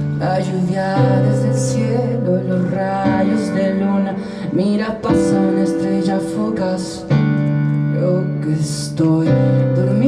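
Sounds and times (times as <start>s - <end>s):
electronic keyboard chords: 0.0s - 10.0s
man singing: 0.0s - 10.0s.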